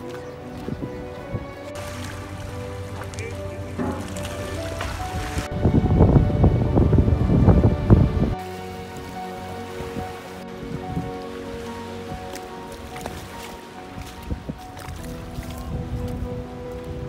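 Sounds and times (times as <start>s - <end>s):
background music with held tones: 0.0s - 17.0s
water splashing against concrete steps: 1.8s - 5.5s, 8.4s - 16.9s.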